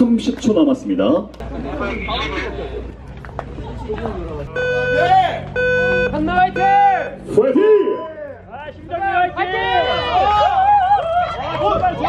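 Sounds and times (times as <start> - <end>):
voices talking: 0.0 - 12.0
higher-pitched start beep: 4.5 - 8.2
timer beeps: 4.5 - 8.2.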